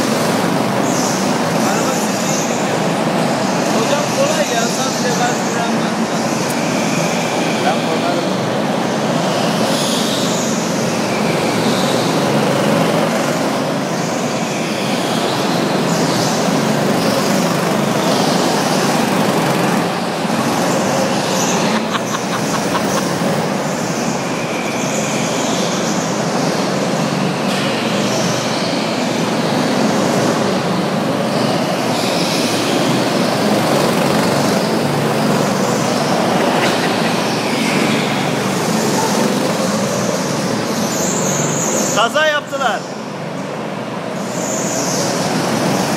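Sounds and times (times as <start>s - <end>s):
go-kart motors: 0.0s - 45.9s.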